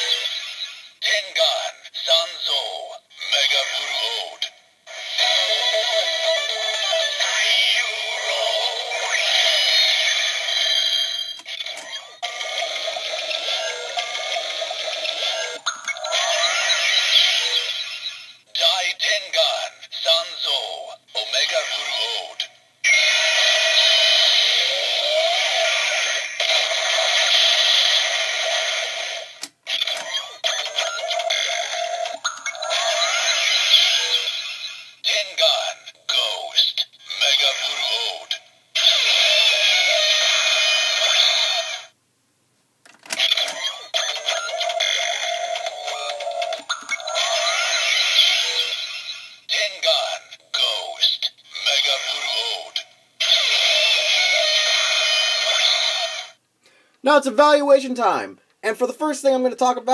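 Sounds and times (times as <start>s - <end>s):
toy voice call-outs: 0.0s - 0.4s, 1.0s - 17.9s, 18.6s - 28.4s, 29.7s - 41.9s, 43.1s - 56.4s
toy sung chant: 0.0s - 28.0s, 29.7s - 41.9s, 43.1s - 56.4s.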